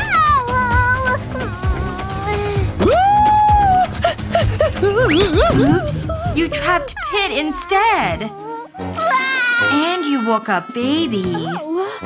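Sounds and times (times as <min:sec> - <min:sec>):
background music: 0:00.0 - 0:12.0
squeaky cartoon character cry: 0:08.2 - 0:12.0.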